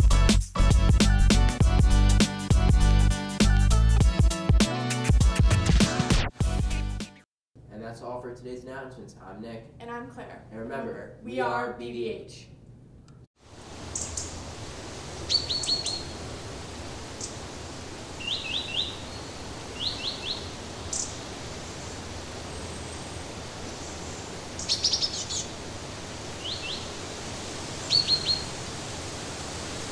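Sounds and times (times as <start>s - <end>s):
steady background hiss: 13.4s - 29.9s
birds chirping: 13.9s - 14.4s, 15.2s - 25.6s, 26.4s - 27.0s, 27.8s - 28.6s.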